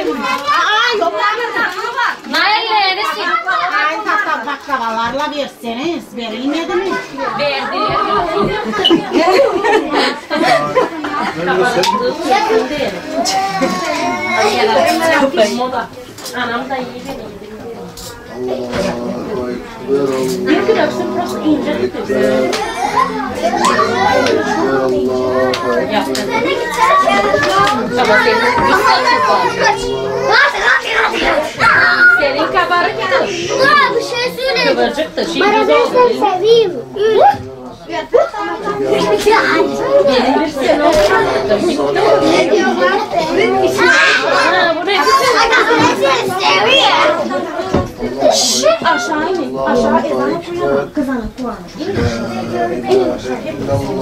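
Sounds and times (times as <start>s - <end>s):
people talking over each other: 0.0s - 54.0s
voices chattering: 0.0s - 54.0s.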